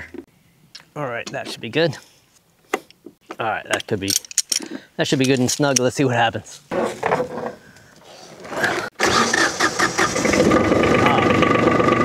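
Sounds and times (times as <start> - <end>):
starter cranking engine: 8.5 - 12.0
diesel tractor engine running: 9.0 - 12.0.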